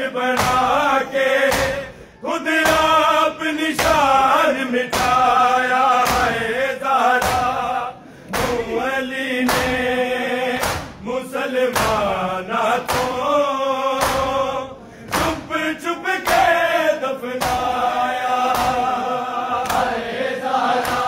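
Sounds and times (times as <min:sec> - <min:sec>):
men chanting in unison: 0:00.0 - 0:21.0
hands slapping bare chests: 0:01.5 - 0:01.8, 0:06.0 - 0:06.4, 0:07.2 - 0:07.6, 0:08.3 - 0:08.7, 0:09.4 - 0:09.8, 0:10.6 - 0:11.0, 0:11.7 - 0:12.1, 0:12.8 - 0:13.3, 0:14.0 - 0:14.4, 0:15.1 - 0:15.5, 0:16.2 - 0:16.5, 0:17.4 - 0:17.8, 0:18.5 - 0:18.9, 0:19.6 - 0:19.9, 0:20.8 - 0:21.0.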